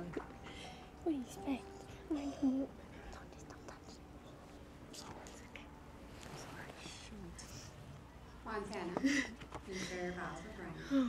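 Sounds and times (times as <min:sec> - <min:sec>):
low steady background hum: 0:00.0 - 0:11.0
people whispering: 0:00.0 - 0:11.0.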